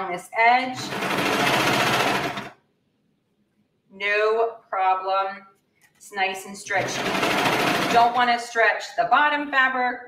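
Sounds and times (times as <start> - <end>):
overlocker sewing machine stitching: 0.6 - 2.6, 6.7 - 8.2.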